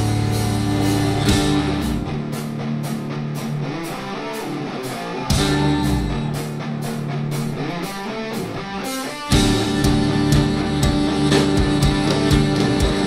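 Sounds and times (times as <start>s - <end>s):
metal band playing: 0.0s - 13.0s
plucked strings: 0.0s - 13.0s.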